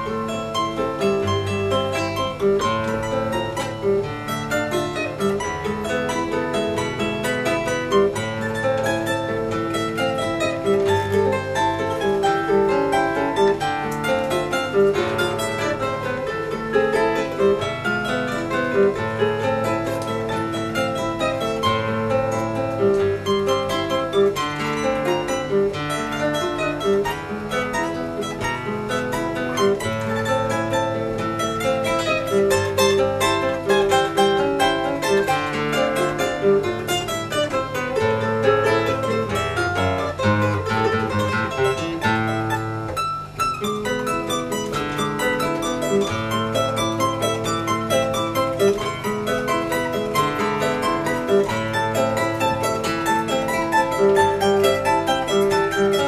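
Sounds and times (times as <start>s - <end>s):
guitar bass line and chords: 0.0s - 56.0s
plucked charango notes: 0.0s - 56.0s.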